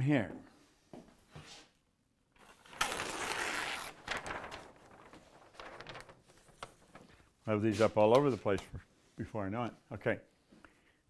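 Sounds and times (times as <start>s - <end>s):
paper sheet crackling: 2.4s - 8.6s
paper ripping off pad: 2.5s - 6.2s.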